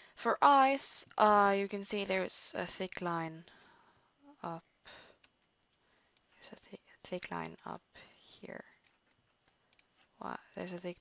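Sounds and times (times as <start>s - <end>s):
soft breath: 3.4s - 7.0s, 7.9s - 8.8s.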